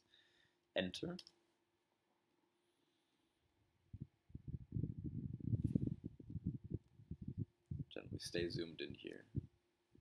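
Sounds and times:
low muffled thumps and rumbles: 4.0 - 8.0.

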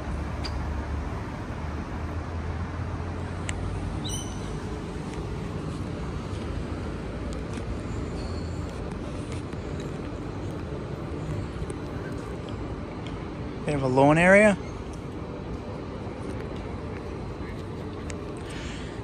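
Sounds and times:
city traffic rumble: 0.0 - 19.0
high chirps: 4.0 - 4.6.

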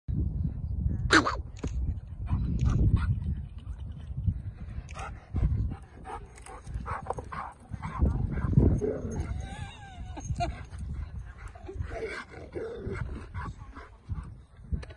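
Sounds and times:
dogs whining: 8.8 - 10.7.

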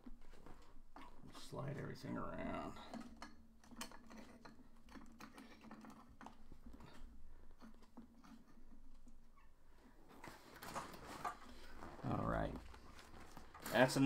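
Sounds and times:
small objects clicking and tapping: 2.8 - 9.3.

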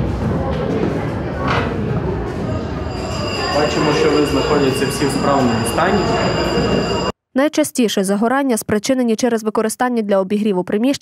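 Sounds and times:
busy room noise: 0.0 - 7.1.

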